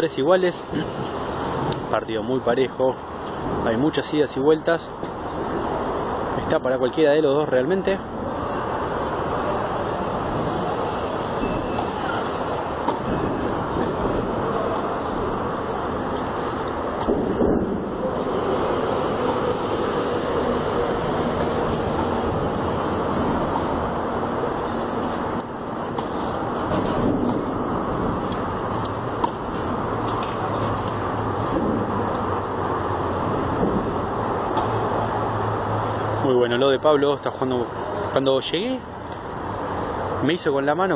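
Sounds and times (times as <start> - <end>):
city traffic noise: 0.0 - 40.9.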